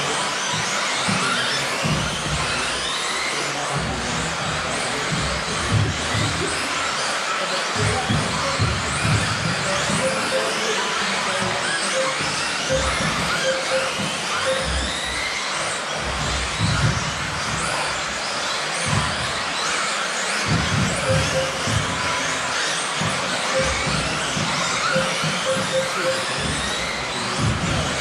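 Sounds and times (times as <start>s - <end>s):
electric toy car motors whining: 0.0s - 28.0s
short high beeps: 12.0s - 14.9s, 24.8s - 26.4s.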